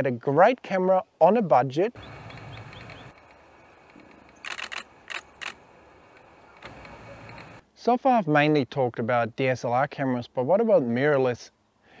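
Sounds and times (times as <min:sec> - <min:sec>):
camera shutter clicks: 0:02.4 - 0:05.6.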